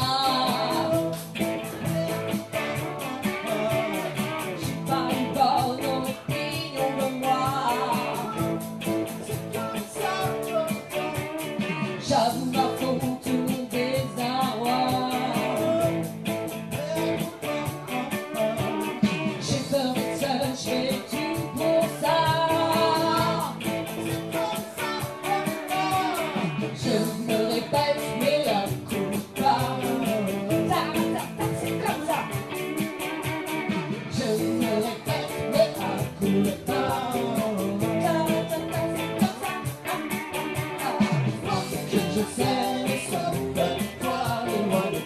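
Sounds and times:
electric guitar strumming: 0.0 - 45.0
person singing: 0.0 - 45.0
steady drum beat: 0.0 - 45.0.

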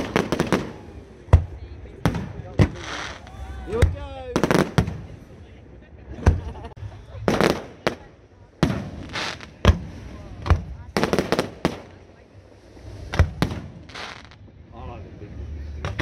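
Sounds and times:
fireworks bursting with crackle: 0.0 - 5.4, 6.2 - 14.5.

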